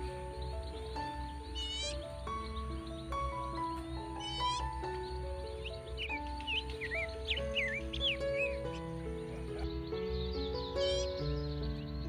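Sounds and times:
birds chirping: 0.0s - 12.0s
slow melodic background music: 0.0s - 12.0s.

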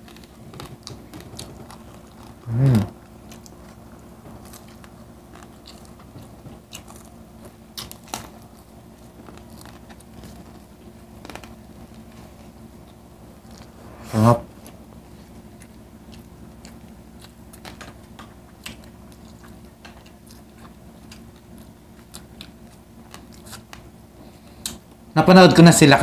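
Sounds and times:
crunchy chewing: 0.0s - 13.8s, 14.6s - 24.9s
person humming mm: 2.4s - 2.9s, 13.9s - 14.5s.

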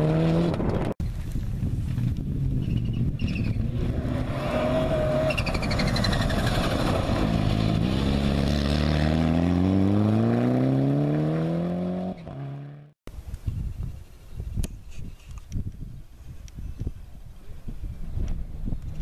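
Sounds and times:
rally car engine revving: 0.0s - 0.9s, 3.5s - 12.9s.

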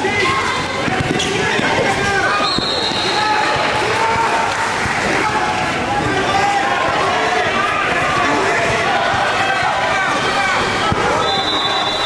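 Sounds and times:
voices of players and spectators: 0.0s - 12.0s
basketball bouncing on court: 0.6s - 3.8s.

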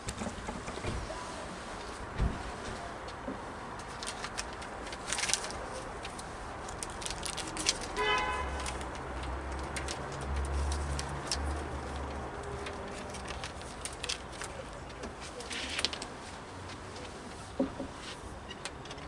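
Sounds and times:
paper rustling: 0.5s - 18.4s.

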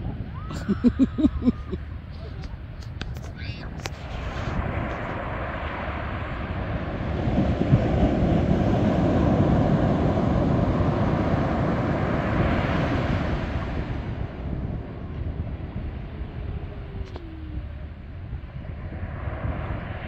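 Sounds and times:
surf breaking on beach: 0.0s - 20.0s
wind on microphone: 0.0s - 20.0s.

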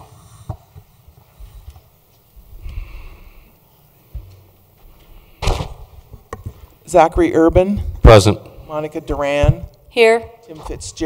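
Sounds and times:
loud microphone pop: 5.4s - 5.9s.

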